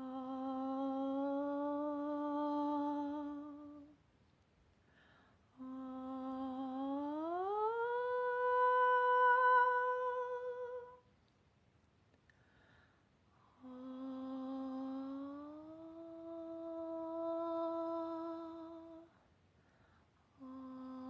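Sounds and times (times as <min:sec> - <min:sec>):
woman humming: 0:00.0 - 0:03.9, 0:05.6 - 0:11.0, 0:13.6 - 0:19.1, 0:20.4 - 0:21.0.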